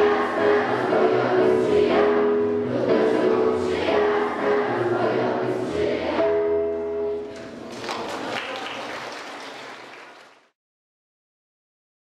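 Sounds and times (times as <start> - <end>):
children's choir singing: 0.0 - 6.9
applause: 7.6 - 10.6.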